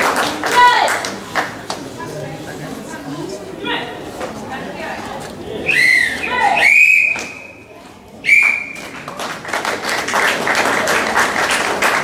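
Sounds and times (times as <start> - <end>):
scattered clapping: 0.0 - 1.9, 8.3 - 12.0
crowd noise: 0.0 - 12.0
referee's whistle blast: 5.7 - 7.6.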